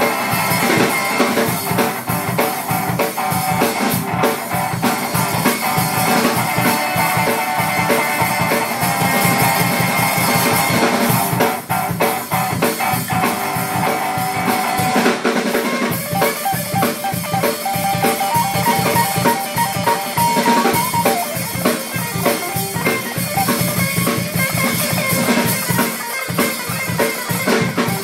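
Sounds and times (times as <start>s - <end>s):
drum kit beat: 0.0s - 28.0s
guitar playing single notes: 15.9s - 28.0s.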